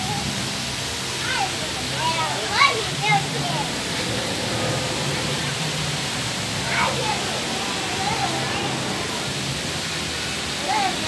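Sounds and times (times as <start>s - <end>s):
children calling and squealing: 0.0s - 11.0s
steady rushing background noise: 0.0s - 11.0s.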